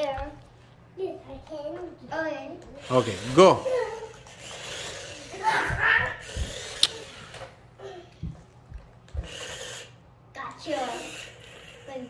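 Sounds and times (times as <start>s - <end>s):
toy car motors whirring: 1.5s - 7.6s, 9.1s - 12.0s.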